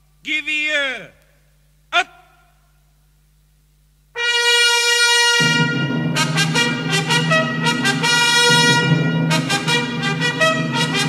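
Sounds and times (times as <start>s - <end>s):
military brass band playing: 4.2s - 11.0s.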